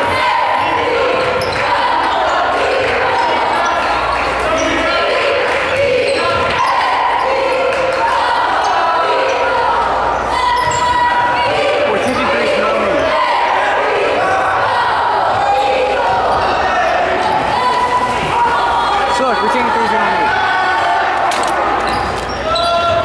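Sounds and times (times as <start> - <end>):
spectators shouting echoing: 0.0 - 23.0.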